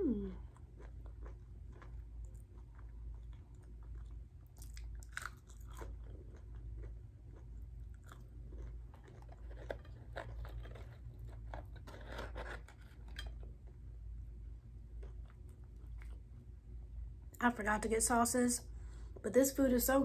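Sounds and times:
steady low hum: 0.0s - 20.0s
chewing crunchy fried chicken: 0.2s - 14.0s, 14.7s - 16.5s.

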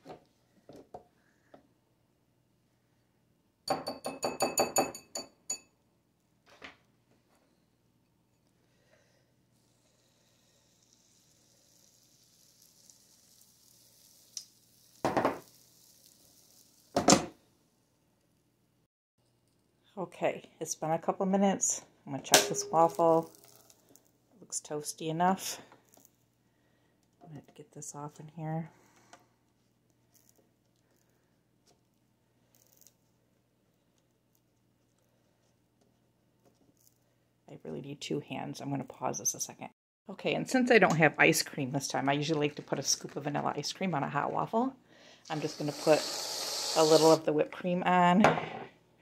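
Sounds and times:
batter sizzling on hot plates: 10.0s - 17.0s, 45.3s - 47.2s
tongs scraping waffle iron: 45.3s - 47.2s.

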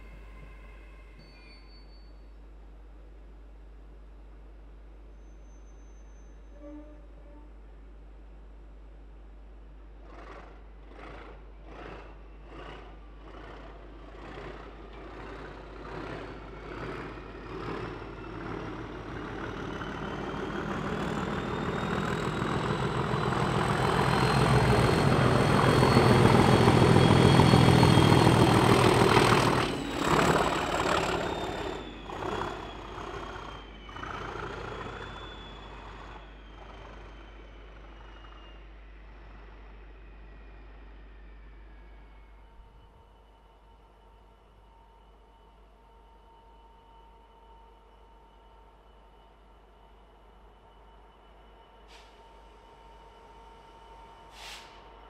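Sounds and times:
train rumbling: 0.0s - 55.0s
train wheels clicking: 10.1s - 37.0s.

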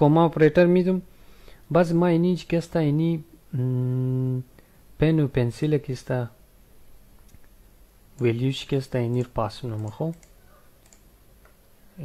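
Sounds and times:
keyboard typing clicks: 9.0s - 11.6s.

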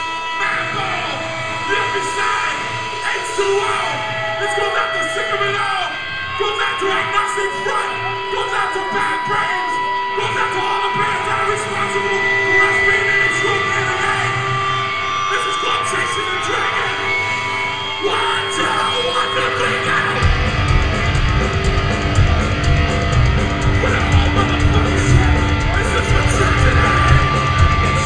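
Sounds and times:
guitar feedback: 0.0s - 28.0s
punk band playing: 0.0s - 28.0s.

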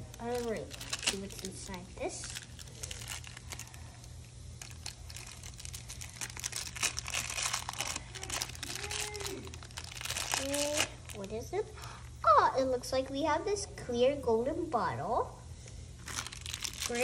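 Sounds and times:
plastic wrapper crinkling: 0.0s - 12.0s, 16.0s - 17.0s.

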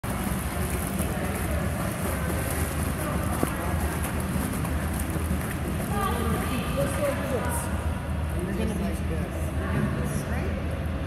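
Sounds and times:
pool water splashing: 0.0s - 9.0s.

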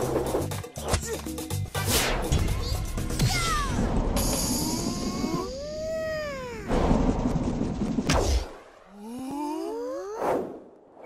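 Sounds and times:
cartoon soundtrack music: 0.0s - 6.9s.

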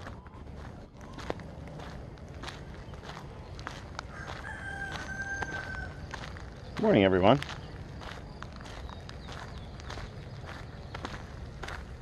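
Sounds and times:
footsteps on gravel: 0.0s - 12.0s
rooster crowing: 4.1s - 6.1s.

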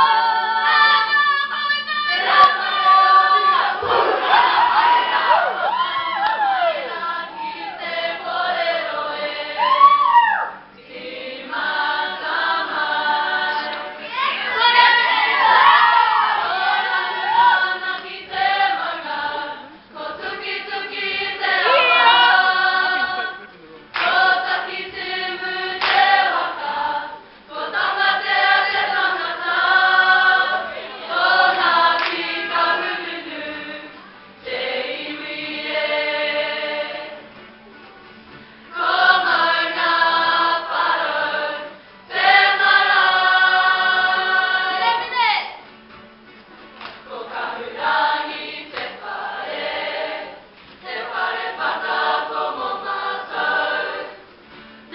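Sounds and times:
group singing in unison: 0.0s - 9.8s, 10.6s - 37.4s, 38.7s - 45.2s, 46.8s - 54.9s.

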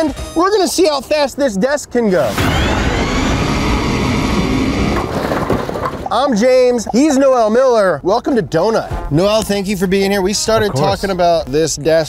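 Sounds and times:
rough motor noise: 2.4s - 6.1s.

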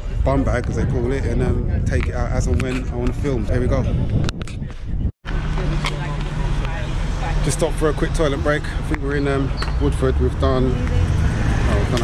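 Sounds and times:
traffic engine hum: 0.0s - 12.0s.

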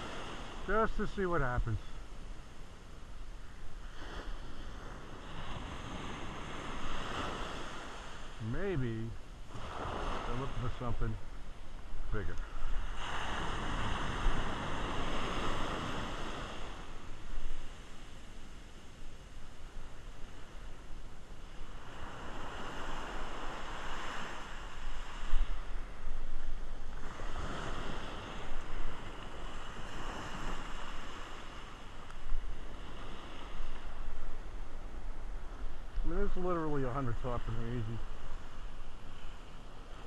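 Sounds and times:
ocean surf breaking: 0.0s - 40.0s.

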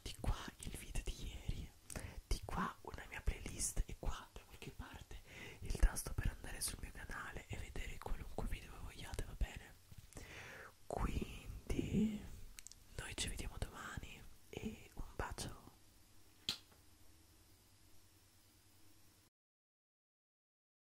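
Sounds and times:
person whispering into microphone: 0.0s - 9.8s, 10.9s - 15.8s.

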